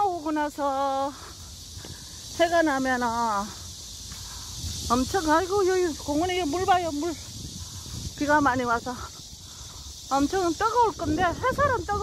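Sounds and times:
woman speaking: 0.0s - 1.3s, 2.4s - 3.6s, 4.9s - 7.3s, 8.2s - 9.2s, 10.1s - 12.0s
cicadas singing: 0.0s - 12.0s.

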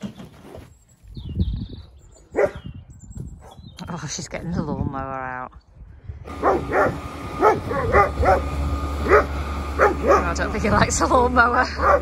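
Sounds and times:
low rumbling: 4.4s - 12.0s
dog yelping: 6.4s - 10.4s.

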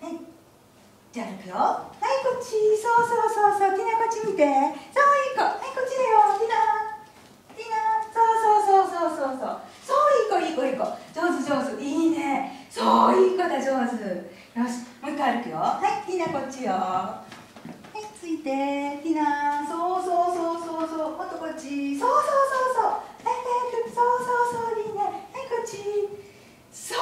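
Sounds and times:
woman calling in sing-song voice: 17.9s - 26.2s.

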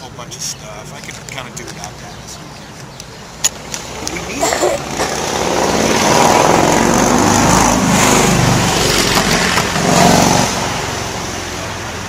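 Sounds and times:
vehicle engine passing: 3.6s - 12.0s.

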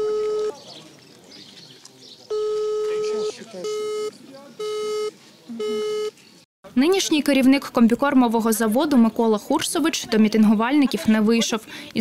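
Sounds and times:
telephone call beeps: 0.0s - 0.6s, 2.3s - 6.2s.

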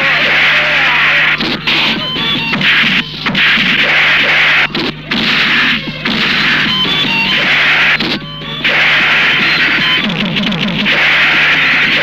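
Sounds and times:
punch and kick impacts: 2.6s - 12.0s.

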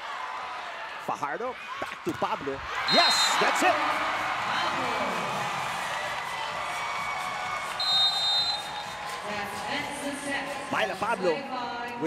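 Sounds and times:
crowd cheering and shouting: 0.0s - 11.4s
short high whistle: 7.7s - 9.0s.

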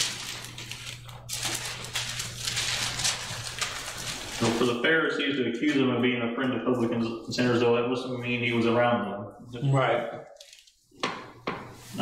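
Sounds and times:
thin pages rustling: 0.0s - 4.7s, 10.4s - 10.8s
low electrical hum: 0.0s - 12.0s.

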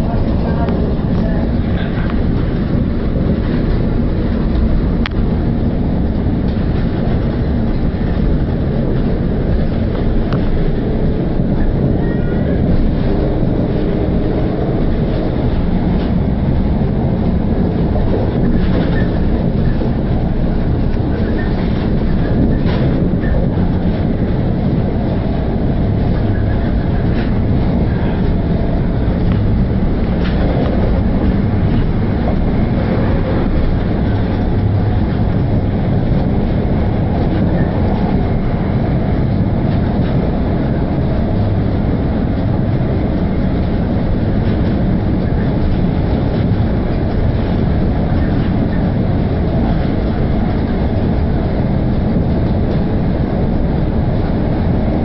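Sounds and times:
faint rail clicks: 0.0s - 55.0s
train wheels rumbling on track: 0.0s - 55.0s.

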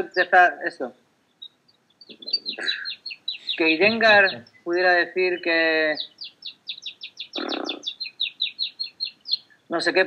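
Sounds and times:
songbird chirping rapidly: 0.0s - 10.0s.

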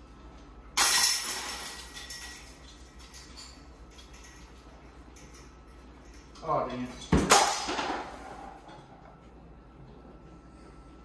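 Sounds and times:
disc hitting basket chains: 0.8s - 8.8s.

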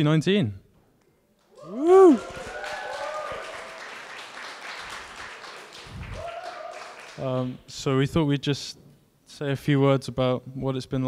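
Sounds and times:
audience applauding: 1.6s - 7.6s.

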